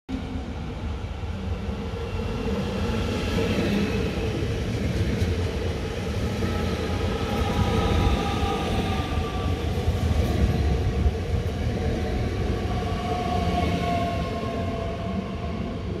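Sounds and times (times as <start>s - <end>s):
train wheels rumbling on rails: 0.2s - 16.0s.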